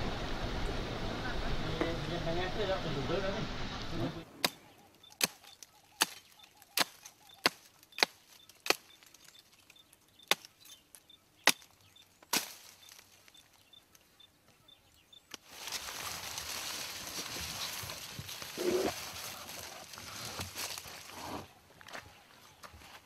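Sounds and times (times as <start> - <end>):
blade chopping tree branch: 4.4 - 9.2, 10.2 - 10.6, 11.4 - 13.0.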